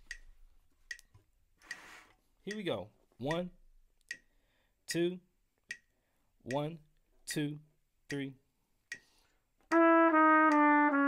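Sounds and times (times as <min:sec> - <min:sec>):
metronome ticking: 0:00.0 - 0:01.8, 0:02.4 - 0:11.0.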